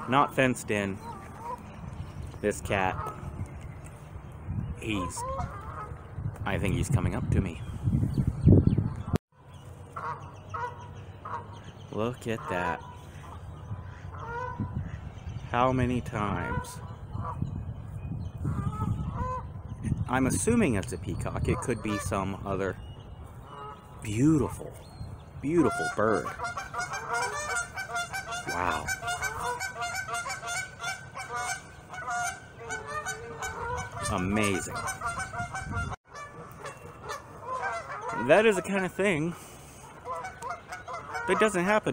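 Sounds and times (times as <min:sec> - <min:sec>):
bird honking: 0:00.0 - 0:01.9, 0:02.5 - 0:03.4, 0:04.9 - 0:06.1, 0:09.0 - 0:15.4, 0:16.0 - 0:19.8, 0:21.4 - 0:24.8, 0:25.4 - 0:41.9.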